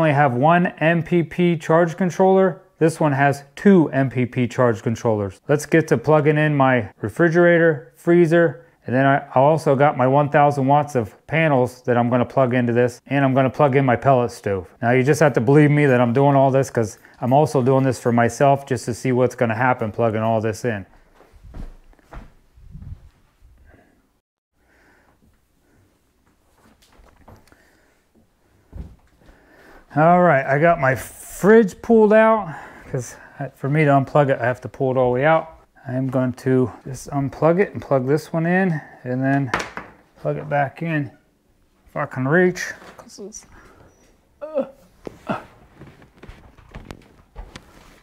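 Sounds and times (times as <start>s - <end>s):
soft low thumps: 21.3s - 23.6s.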